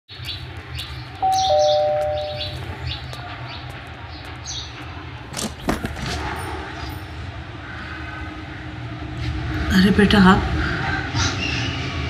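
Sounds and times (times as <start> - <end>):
birds chirping: 0.1 - 4.8
doorbell ringing ding-dong: 1.2 - 2.6.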